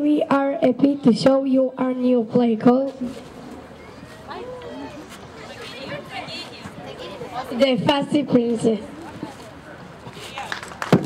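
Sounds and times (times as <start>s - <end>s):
murmur of background voices: 0.0s - 11.0s.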